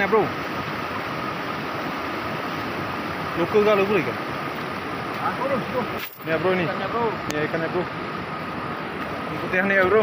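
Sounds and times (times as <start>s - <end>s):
river water over rocks: 0.0s - 10.0s.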